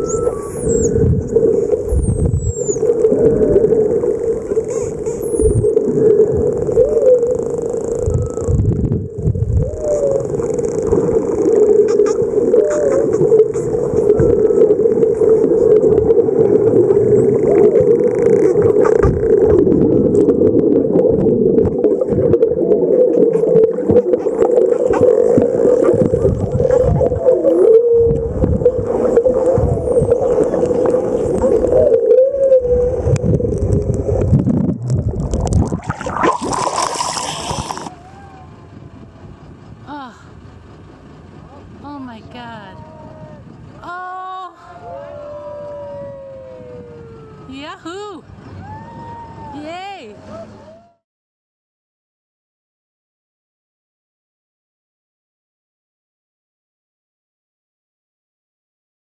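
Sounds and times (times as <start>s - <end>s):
high falling whistles: 0.0s - 1.0s
dolphin swooping calls: 0.0s - 8.7s, 9.6s - 19.7s, 22.7s - 33.4s
loud steady underwater drone: 0.0s - 51.0s.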